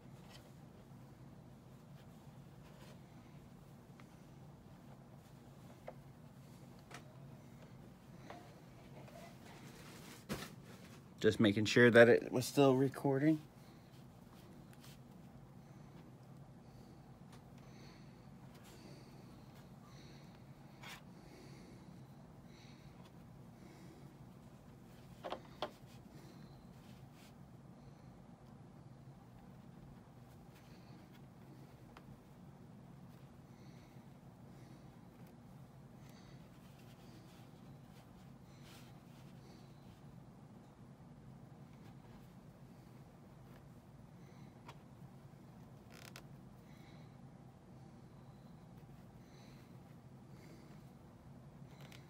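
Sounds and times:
low room hum: 0.0 - 52.0.

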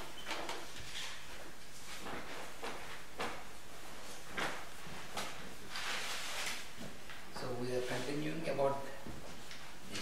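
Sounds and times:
paper pages rustling: 4.4 - 6.8.

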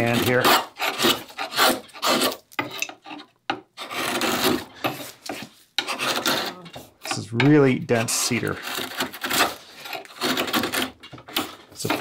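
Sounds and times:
chisel scraping through wood: 0.0 - 12.0.

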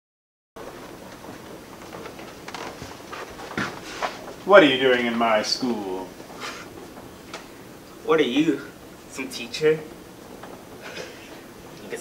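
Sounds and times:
footsteps on carpet: 0.6 - 8.0
faint steady hiss: 0.6 - 12.0.

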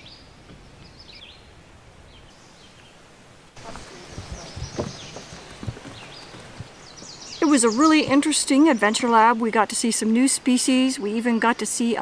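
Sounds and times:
footsteps on wooden boards: 3.6 - 8.6.

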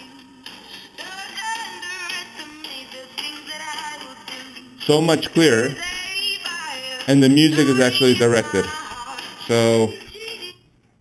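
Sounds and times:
song from phone speaker: 0.0 - 10.8.

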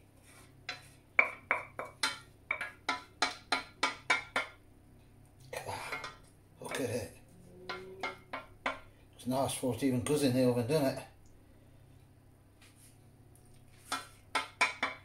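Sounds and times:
spoon knocking on metal saucepan: 0.7 - 4.6, 7.6 - 8.9, 13.9 - 15.0.

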